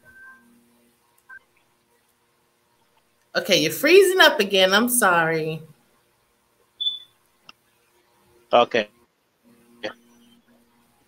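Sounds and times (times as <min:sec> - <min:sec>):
short high chirp: 0:06.8 - 0:07.1.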